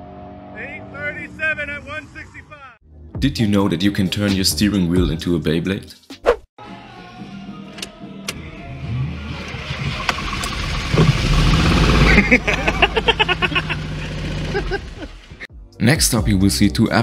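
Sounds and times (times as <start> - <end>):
car engine running: 9.1 - 15.5.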